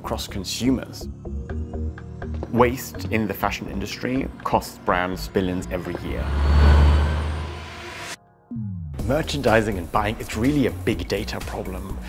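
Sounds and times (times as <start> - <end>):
deep rumbling whoosh: 5.1 - 8.2.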